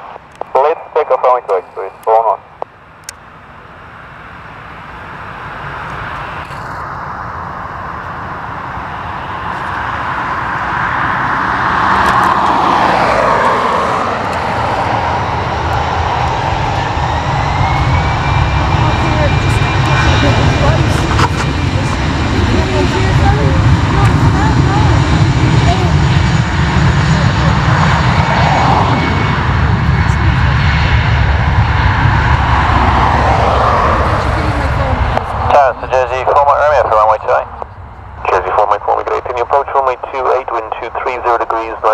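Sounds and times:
jet engines roaring: 0:00.0 - 0:41.9.

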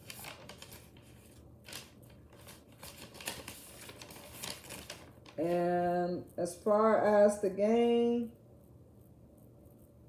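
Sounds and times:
paper rustling: 0:00.0 - 0:05.6.

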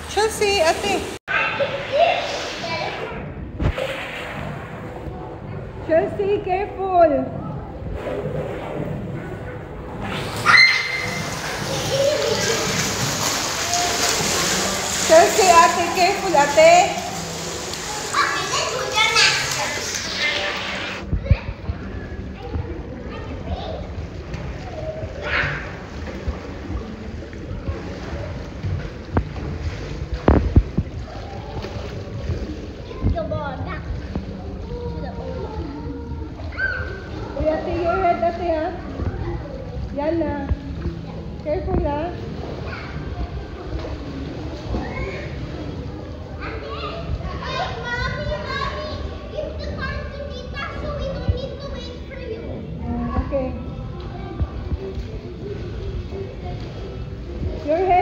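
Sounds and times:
water splashing in a pool: 0:00.0 - 0:58.0
children calling out: 0:10.3 - 0:15.0, 0:17.8 - 0:21.0, 0:34.7 - 0:38.0
children shrieking and calling out: 0:10.4 - 0:12.8, 0:34.8 - 0:37.0.

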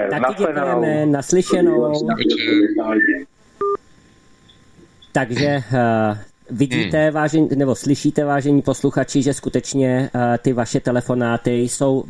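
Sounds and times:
speech over phone line: 0:00.0 - 0:03.3.

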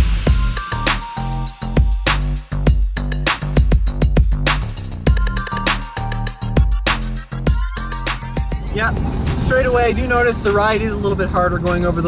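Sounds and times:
background music with beat: 0:00.0 - 0:12.0
car road and engine noise: 0:07.5 - 0:12.0
man speaking: 0:08.7 - 0:12.0.

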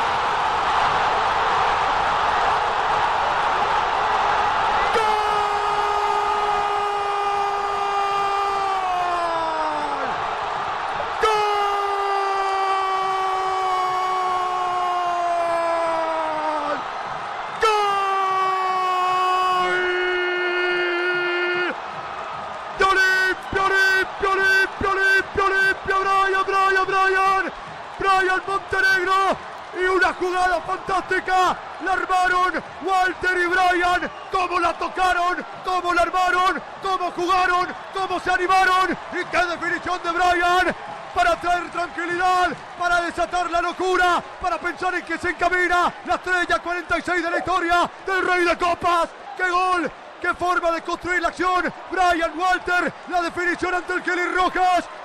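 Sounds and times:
crowd roar: 0:00.0 - 0:55.0
commentator shouting goal: 0:11.1 - 0:16.8, 0:17.5 - 0:21.8, 0:22.7 - 0:55.0.

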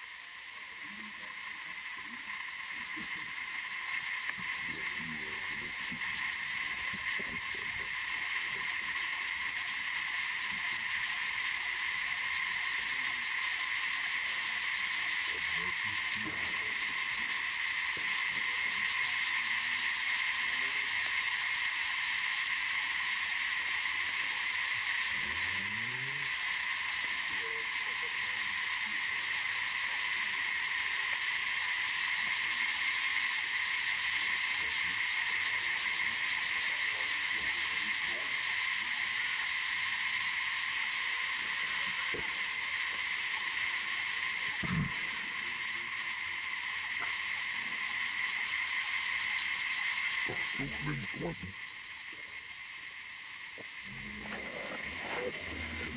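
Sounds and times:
insects buzzing: 0:00.0 - 0:55.9.

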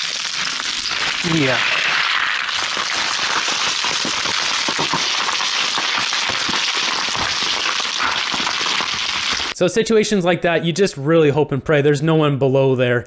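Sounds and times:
scree stones clattering and grinding: 0:00.0 - 0:09.6.

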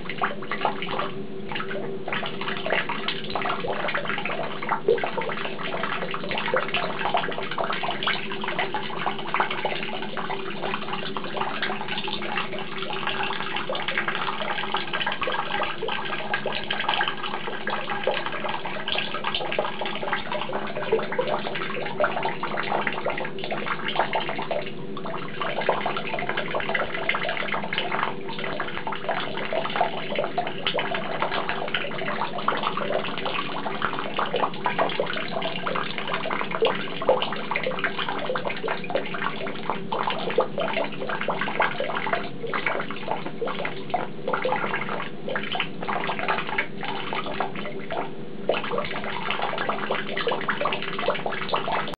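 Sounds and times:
tap water splashing into basin: 0:00.0 - 0:51.9.

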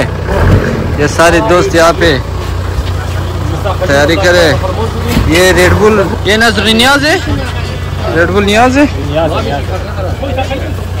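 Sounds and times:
men talking: 0:00.0 - 0:11.0
steady low rumble: 0:00.0 - 0:11.0.

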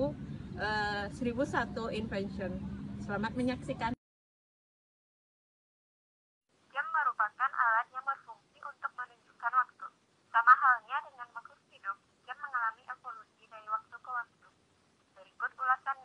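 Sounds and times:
tinny telephone-like speech: 0:06.8 - 0:14.4, 0:15.2 - 0:16.0.

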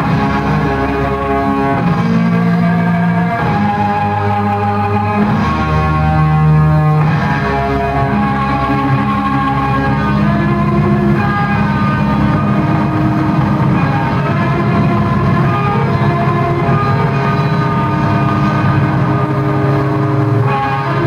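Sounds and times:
blues rock band playing: 0:00.0 - 0:21.0
electric guitar held notes: 0:00.0 - 0:21.0.

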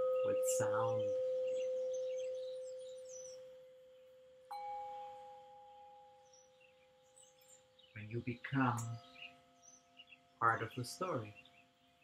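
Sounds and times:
singing bowls ringing: 0:00.0 - 0:07.8.

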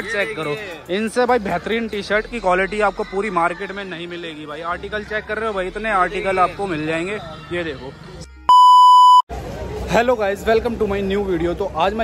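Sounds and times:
street noise: 0:00.0 - 0:12.0
high electronic beep: 0:08.5 - 0:09.3.

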